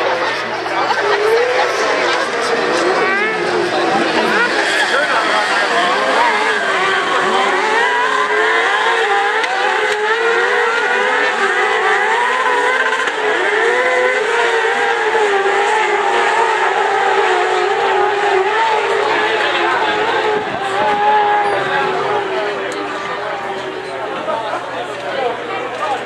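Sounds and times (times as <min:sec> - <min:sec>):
cart engines revving: 0:00.0 - 0:26.0.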